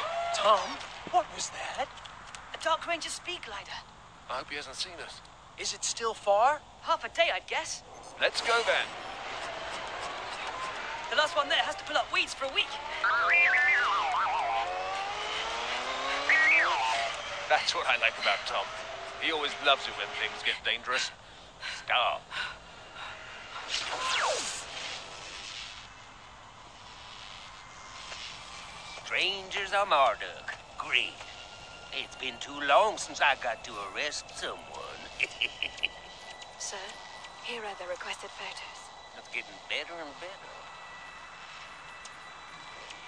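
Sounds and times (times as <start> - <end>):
energy field hiss with low hum: 0.8 - 15.6, 16.2 - 42.8
faint thin rising tone: 12.1 - 20.6, 22.9 - 35.2
steady rushing noise: 22.2 - 34.6.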